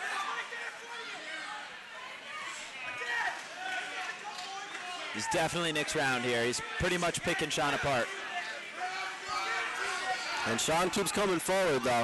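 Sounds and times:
crowd shouting and chattering: 0:00.0 - 0:12.0.

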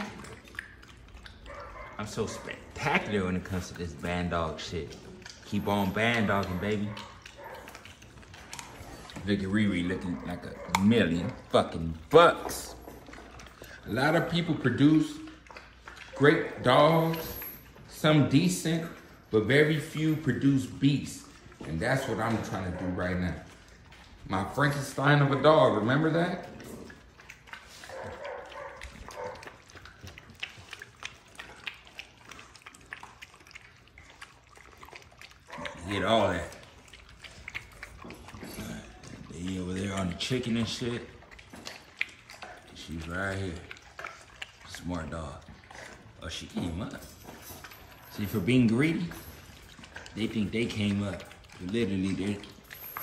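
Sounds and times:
puppy chewing wetly: 0:00.0 - 0:53.0.

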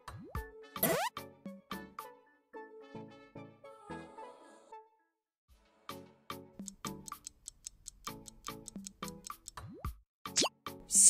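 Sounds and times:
quick ticking countdown: 0:06.6 - 0:09.7.

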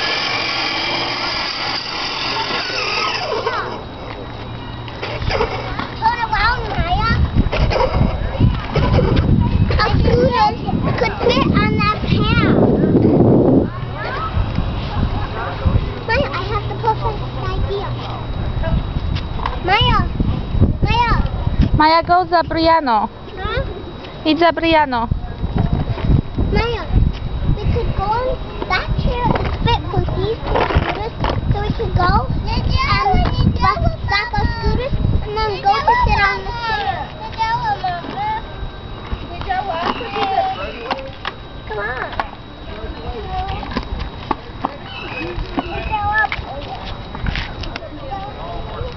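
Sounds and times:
children calling out: 0:00.0 - 0:04.0, 0:44.8 - 0:46.6
scooter wheels rolling on asphalt: 0:00.0 - 0:18.2, 0:28.6 - 0:31.6
young children's voices: 0:02.2 - 0:04.0, 0:05.0 - 0:14.6, 0:16.0 - 0:18.2, 0:19.6 - 0:20.2, 0:20.8 - 0:21.3, 0:26.5 - 0:38.6, 0:44.9 - 0:46.7.

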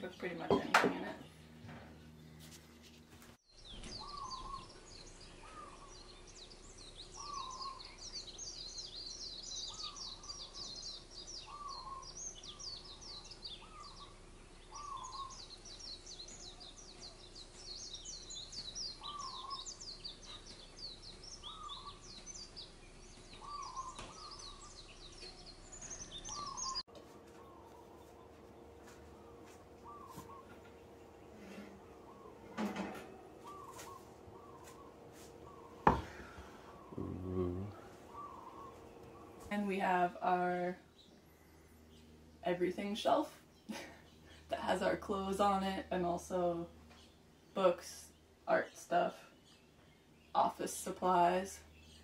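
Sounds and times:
small birds chirping: 0:00.0 - 0:52.0
lower bird call: 0:03.8 - 0:22.6, 0:23.3 - 0:39.5.

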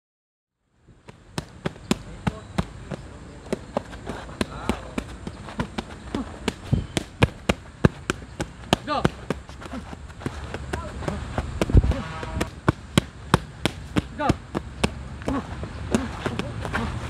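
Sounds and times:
punches smacking padded mitts: 0:01.1 - 0:17.0
person shouting: 0:15.2 - 0:17.0.

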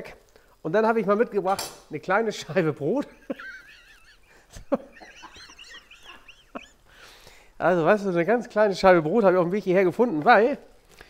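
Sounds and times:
person laughing in high squeals: 0:04.9 - 0:06.9.

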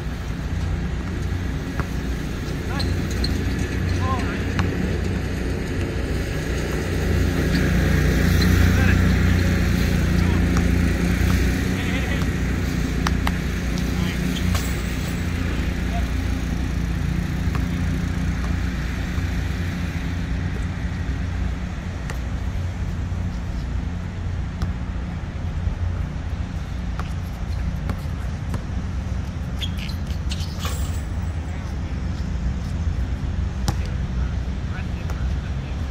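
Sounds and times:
traffic rumble: 0:00.0 - 0:35.9
basketball bouncing on court: 0:00.7 - 0:14.8, 0:17.2 - 0:19.3
faint players' voices: 0:02.5 - 0:06.0, 0:08.4 - 0:18.7.

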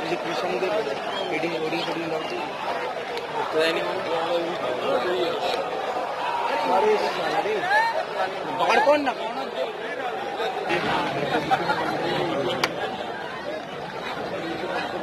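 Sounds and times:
spectators chattering: 0:00.0 - 0:15.0.

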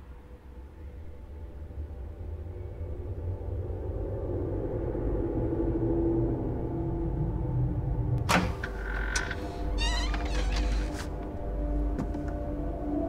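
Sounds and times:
cabinet door hinges creaking: 0:08.2 - 0:11.3.

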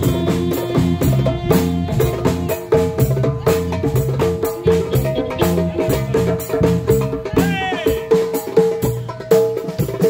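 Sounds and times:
djembe drum strokes: 0:00.0 - 0:10.0
live band playing: 0:00.0 - 0:10.0.

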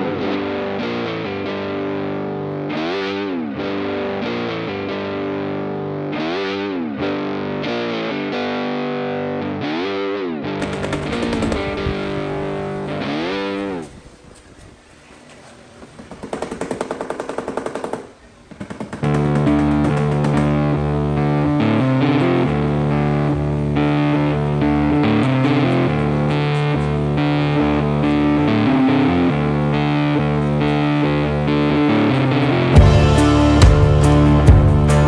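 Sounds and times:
rock music with distorted guitar: 0:00.0 - 0:13.9, 0:19.1 - 0:35.0.

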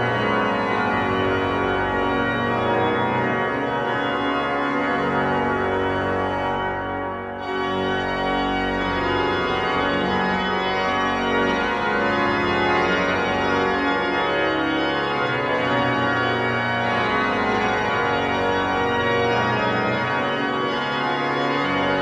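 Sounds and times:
pipe organ playing chords: 0:00.0 - 0:22.0.

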